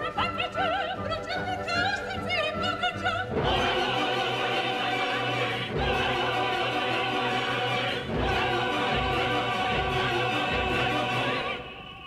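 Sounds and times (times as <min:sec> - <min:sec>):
opera chorus singing: 0:00.0 - 0:12.0
orchestra: 0:00.0 - 0:12.0.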